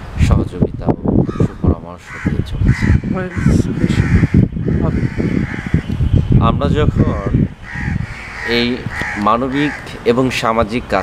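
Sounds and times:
man talking: 0:00.2 - 0:04.2, 0:04.8 - 0:05.1, 0:06.3 - 0:07.5, 0:08.4 - 0:11.0
crows cawing: 0:01.2 - 0:06.1, 0:06.9 - 0:11.0.

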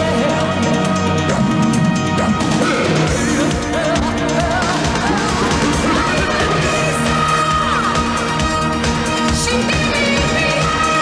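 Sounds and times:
live rock band: 0:00.0 - 0:11.0.

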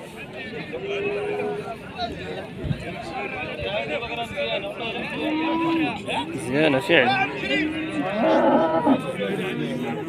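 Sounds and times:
crowd chatter: 0:00.0 - 0:10.0
cow mooing: 0:07.8 - 0:09.1.

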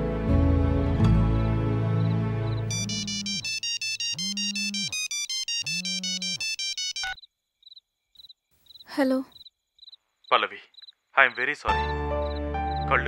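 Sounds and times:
mobile phone ringtone: 0:02.7 - 0:07.2.

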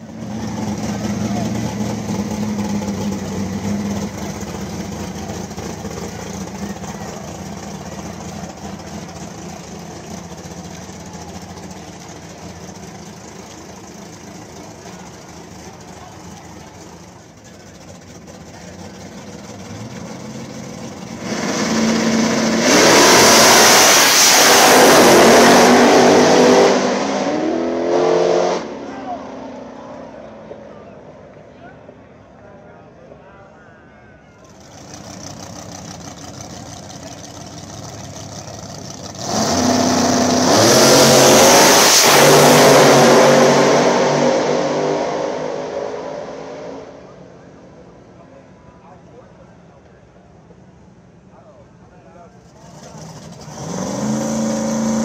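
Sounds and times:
close engine with rushing noise: 0:00.0 - 0:32.0, 0:34.4 - 0:55.0
drag race car engine: 0:00.0 - 0:33.6, 0:34.3 - 0:55.0.

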